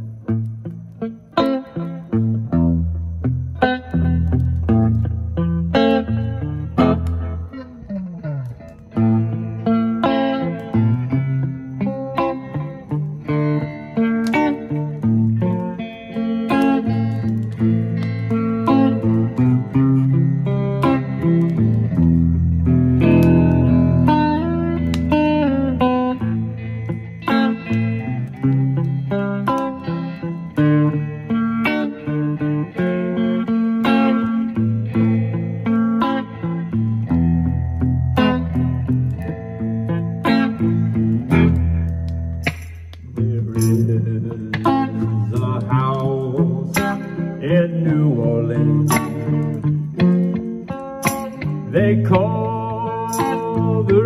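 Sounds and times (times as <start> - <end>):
electric guitars playing: 0.0 - 54.0.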